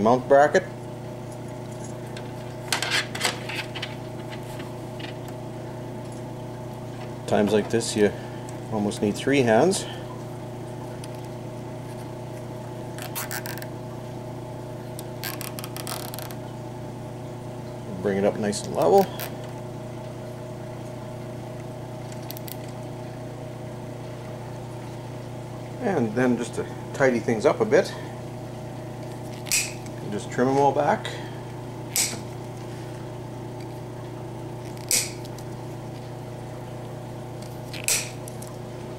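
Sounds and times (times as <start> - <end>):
steady low hum: 0.0 - 38.9
zip tie ratcheting: 13.0 - 13.7, 15.2 - 16.4, 29.3 - 29.9, 31.9 - 32.2, 34.7 - 35.2.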